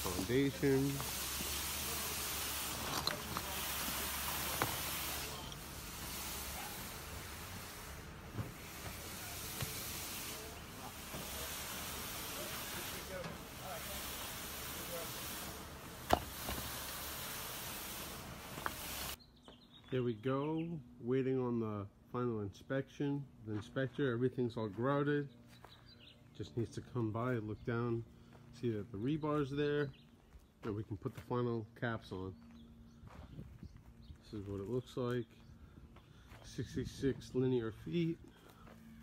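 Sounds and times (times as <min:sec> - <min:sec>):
concrete pump hose rushing: 0:00.0 - 0:19.2.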